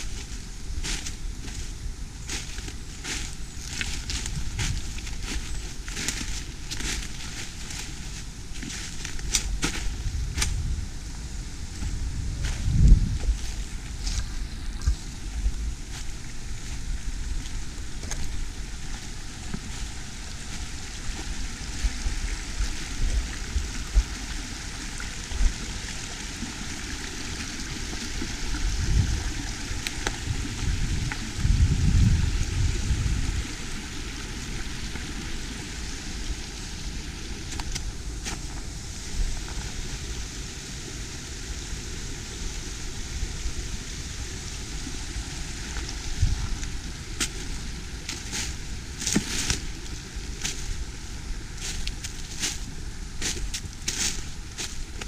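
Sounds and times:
wind on microphone: 0.0 - 55.0.

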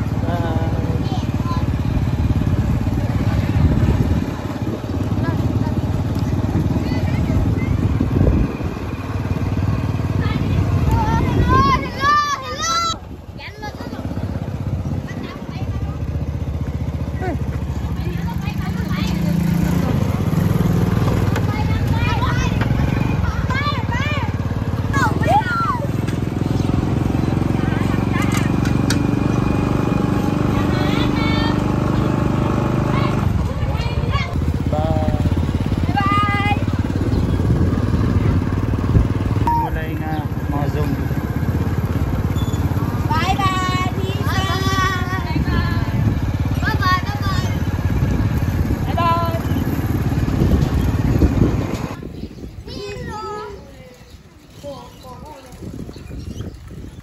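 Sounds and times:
small motorbike engine running: 0.0 - 57.0
voices calling out: 0.0 - 57.0
wind on microphone: 6.4 - 8.9, 35.0 - 39.5, 43.8 - 57.0.

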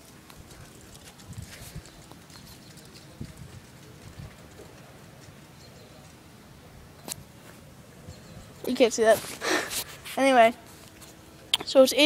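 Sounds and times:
footsteps on paved path: 0.0 - 6.4, 7.0 - 12.0.

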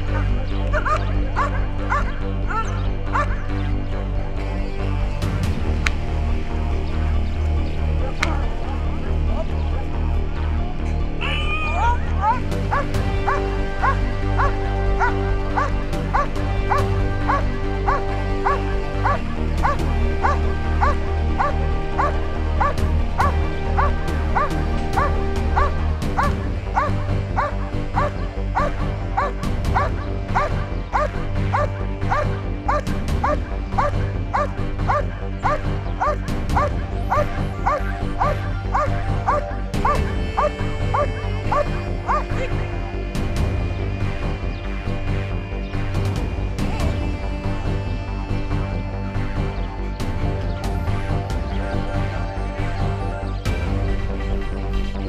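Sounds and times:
background music: 0.0 - 55.0
dog barking: 0.1 - 3.4, 11.8 - 42.5.

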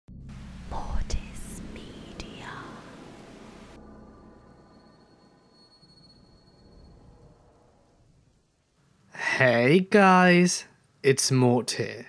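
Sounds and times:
sharp distorted hits: 0.1 - 8.4
low hum: 0.1 - 8.8
static hiss: 0.3 - 3.8
whispering: 0.7 - 3.0.

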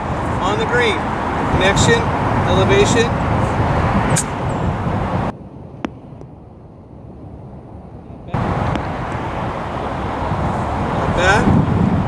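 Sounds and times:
outdoor background rumble: 0.0 - 12.0.

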